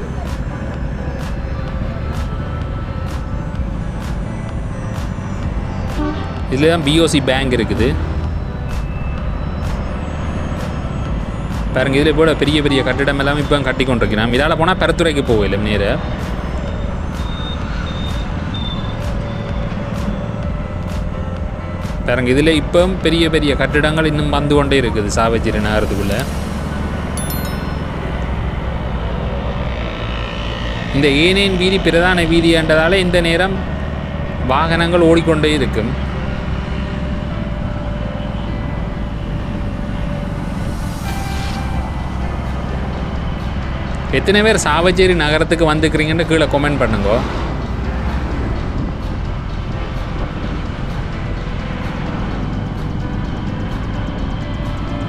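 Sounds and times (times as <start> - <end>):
faint background music: 0.0 - 55.0
vehicle engine and road rumble: 0.0 - 55.0.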